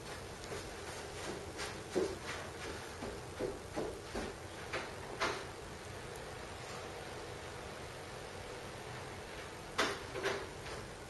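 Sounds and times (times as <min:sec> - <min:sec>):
soft knocks and shuffling: 0:00.0 - 0:05.0.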